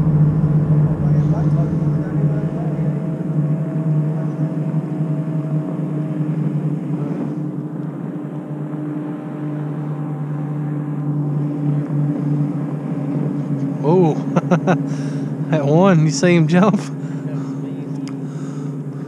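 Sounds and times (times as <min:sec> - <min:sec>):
boat motor hum: 0:00.0 - 0:19.0.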